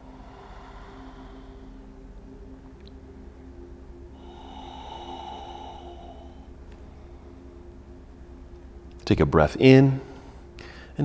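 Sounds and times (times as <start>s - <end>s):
man breathing deeply: 0.0s - 2.4s, 4.1s - 7.7s, 10.1s - 11.0s
soft background music: 0.0s - 11.0s.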